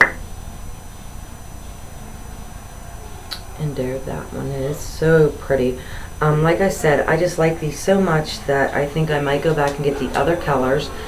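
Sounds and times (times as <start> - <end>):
low steady room noise: 0.0 - 11.0.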